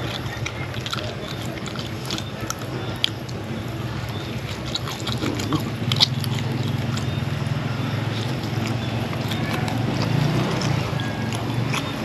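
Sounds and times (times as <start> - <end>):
person chewing: 0.0 - 12.0
steady low hum: 0.0 - 12.0.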